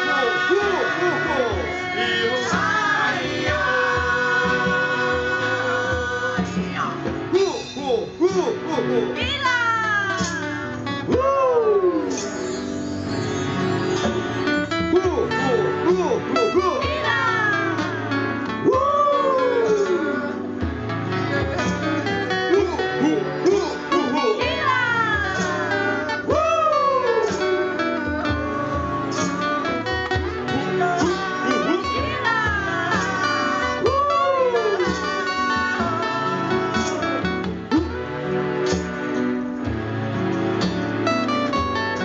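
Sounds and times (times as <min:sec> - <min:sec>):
voices singing: 0:00.0 - 0:12.4, 0:15.2 - 0:38.9
live band playing: 0:00.0 - 0:42.0
strummed acoustic guitars: 0:00.0 - 0:42.0.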